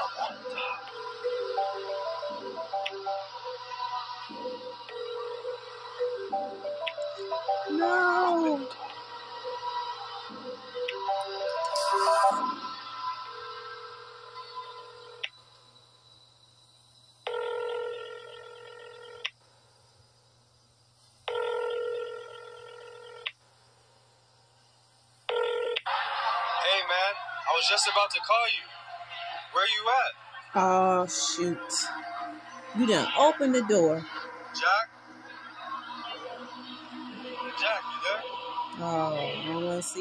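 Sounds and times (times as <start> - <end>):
tense film score music: 0.9 - 15.3
telephone ringing: 17.3 - 19.2, 21.3 - 23.3, 25.3 - 25.8.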